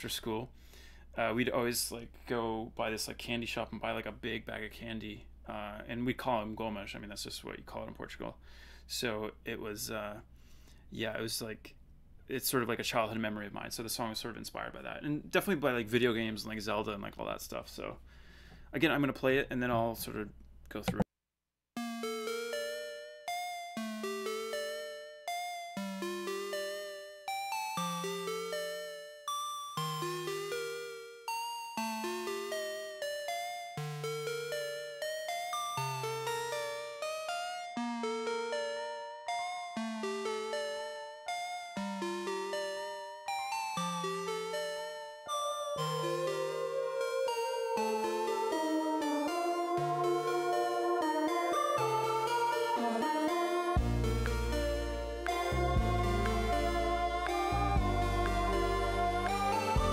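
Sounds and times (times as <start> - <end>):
plucked synthesizer arpeggio: 32.0 - 59.9
sustained synth layer: 45.4 - 59.9
low synth note: 45.7 - 59.9.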